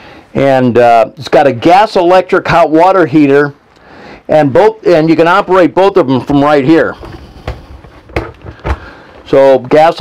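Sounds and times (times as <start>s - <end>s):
low background noise: 0.0s - 10.0s
handling noises: 7.0s - 9.3s.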